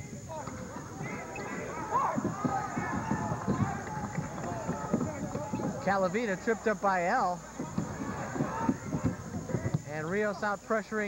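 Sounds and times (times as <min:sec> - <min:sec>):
running footsteps: 0:00.0 - 0:10.6
voices of players and crowd: 0:00.0 - 0:11.0
ball dribbled on hardwood floor: 0:00.4 - 0:05.9
sneaker squeaks: 0:00.4 - 0:05.9.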